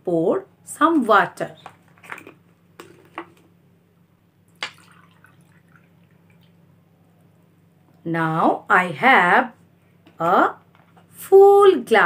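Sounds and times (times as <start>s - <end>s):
water pouring into a glass: 4.6s - 6.6s.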